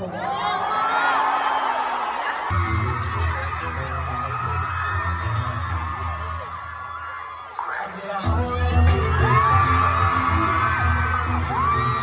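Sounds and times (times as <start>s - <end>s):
crowd screaming and cheering: 0.0s - 12.0s
concert music with heavy bass: 2.5s - 12.0s.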